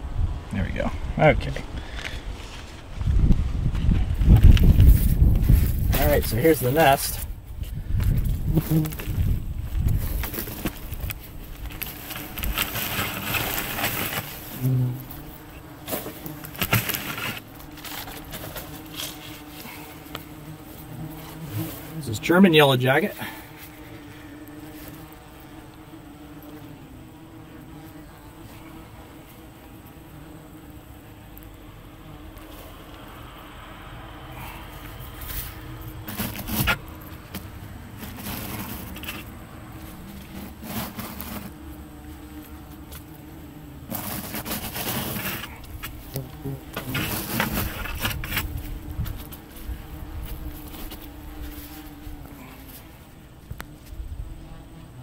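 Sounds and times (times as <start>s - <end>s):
wasps buzzing: 4.2s - 55.0s.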